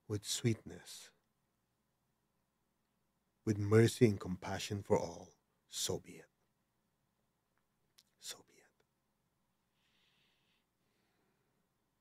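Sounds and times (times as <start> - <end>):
man's breathy whisper: 8.2 - 8.8.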